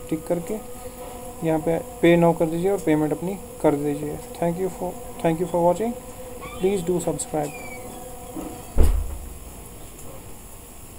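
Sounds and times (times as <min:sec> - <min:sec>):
faint background hum: 0:00.0 - 0:10.9
dull bass-heavy thump: 0:08.8 - 0:09.4.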